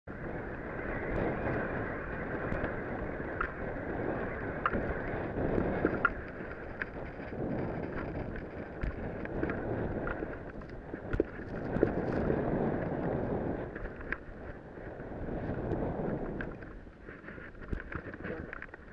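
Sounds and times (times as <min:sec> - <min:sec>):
wind on microphone: 0:00.0 - 0:18.9
snowboard scraping over snow: 0:00.9 - 0:18.9.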